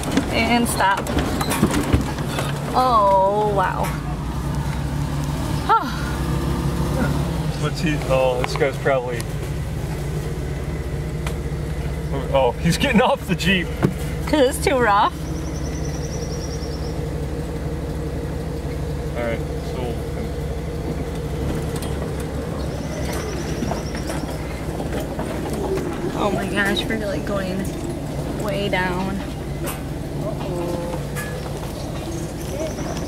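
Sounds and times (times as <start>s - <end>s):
car engine droning: 0.0s - 33.0s.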